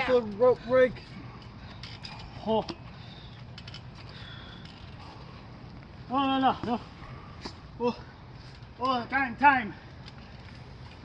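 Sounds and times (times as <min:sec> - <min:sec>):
trampoline springs creaking: 0:00.0 - 0:11.0.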